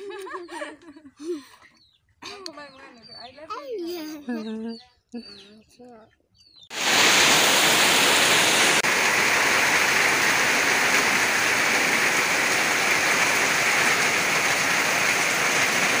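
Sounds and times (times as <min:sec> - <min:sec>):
heavy rain on leaves: 0:06.7 - 0:16.0.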